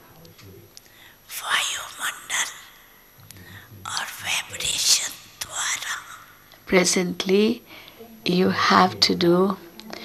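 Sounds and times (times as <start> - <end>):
person whispering: 1.3 - 6.5.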